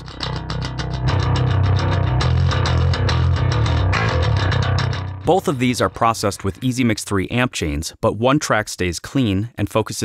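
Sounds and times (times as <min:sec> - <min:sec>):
electric bass playing metal line: 0:00.0 - 0:06.9.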